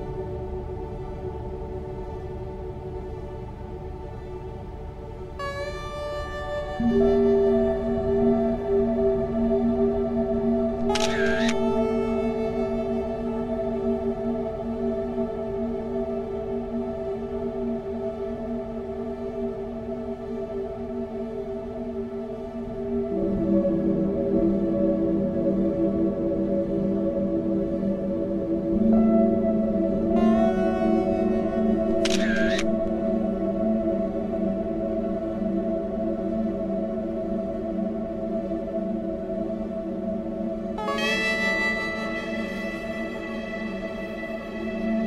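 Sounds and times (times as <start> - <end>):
ambient music with sustained tones: 0.0 - 45.0.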